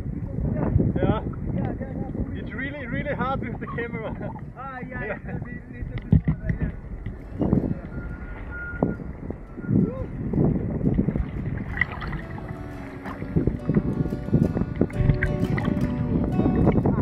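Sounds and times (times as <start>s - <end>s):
wind rushing: 0.0s - 17.0s
water splashing: 5.9s - 17.0s
background music with held notes: 7.2s - 17.0s.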